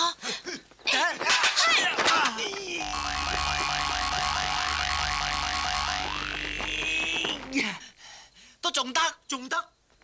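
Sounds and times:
falling glide sound effect: 2.8 - 6.5
low pulsing throb: 2.8 - 6.6
warbling boing-like tone: 2.8 - 6.8.

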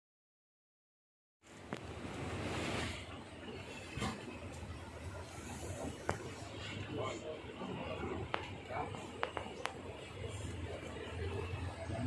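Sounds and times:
air buffeting microphone: 1.5 - 12.0.

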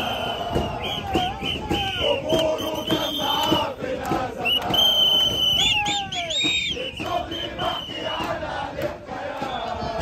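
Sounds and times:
crowd chanting: 0.0 - 10.0
rhythmic hand-clapping: 0.5 - 10.0.

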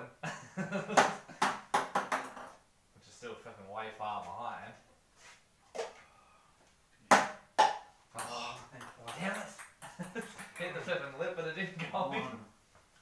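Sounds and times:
ping-pong ball bouncing on table: 1.4 - 2.6, 7.1 - 10.8
voices: 8.2 - 12.5.

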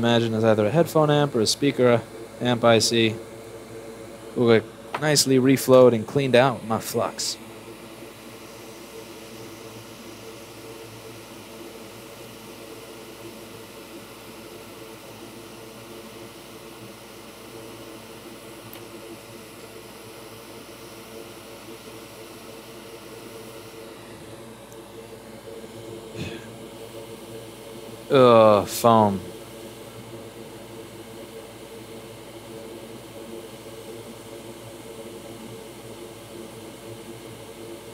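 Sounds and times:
hot air blower hissing: 0.0 - 32.4.

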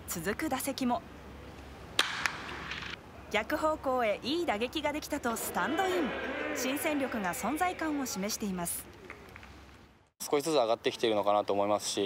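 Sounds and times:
stadium crowd ambience: 1.3 - 9.7
wooden bat hitting ball: 2.0 - 3.0.

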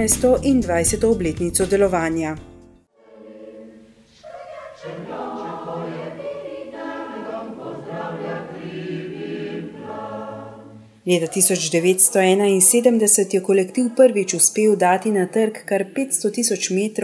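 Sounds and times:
mixed choir singing: 2.9 - 17.0.

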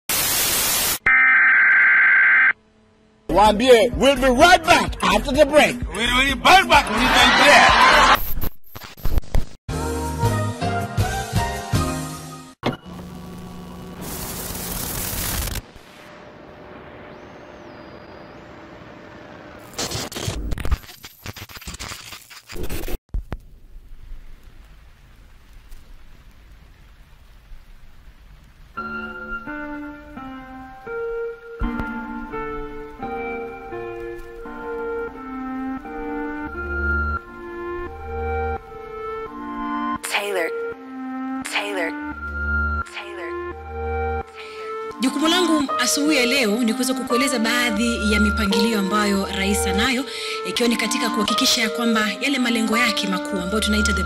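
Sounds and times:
steady hiss: 0.1 - 1.0, 13.7 - 17.8
television static hiss: 0.1 - 1.0, 12.9 - 21.9, 23.2 - 29.2.

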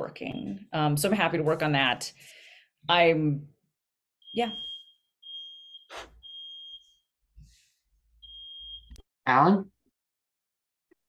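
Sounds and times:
high-pitched alarm beeps: 4.2 - 6.9, 8.2 - 9.0.

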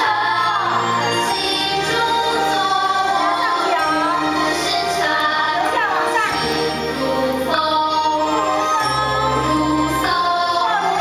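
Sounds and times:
group of voices singing: 0.0 - 11.0
instrumental accompaniment: 0.0 - 11.0.

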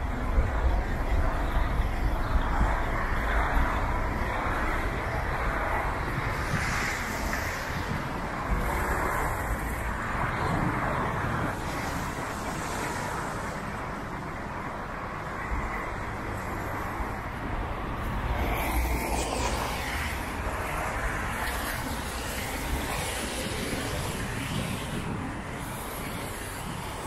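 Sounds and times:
tyres hissing on wet road: 5.4 - 10.2, 10.9 - 14.3, 18.3 - 27.0.

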